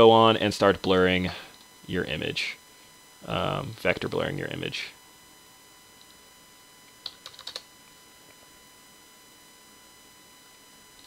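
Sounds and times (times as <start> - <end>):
faint electrical hum: 0.0 - 11.0
computer keyboard key presses: 7.0 - 7.6.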